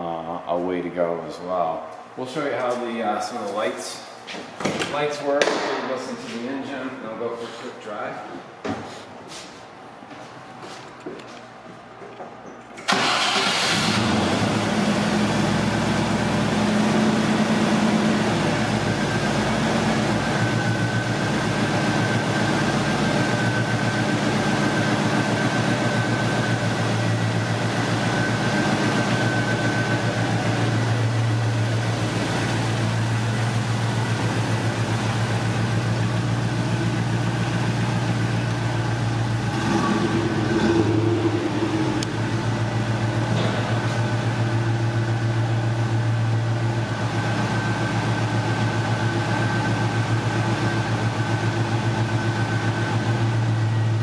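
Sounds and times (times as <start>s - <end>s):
car engine starting and idling: 12.8s - 54.0s.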